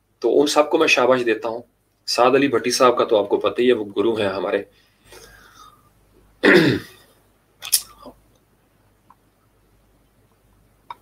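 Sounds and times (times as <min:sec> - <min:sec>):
man clearing his throat: 0:06.4 - 0:07.1.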